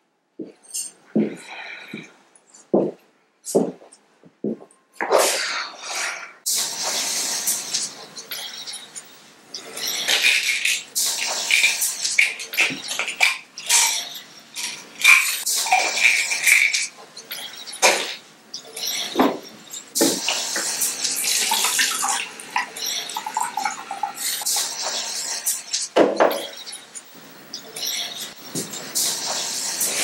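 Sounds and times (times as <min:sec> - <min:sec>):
bottles and jars clinking: 0:08.2 - 0:20.4, 0:25.8 - 0:29.0.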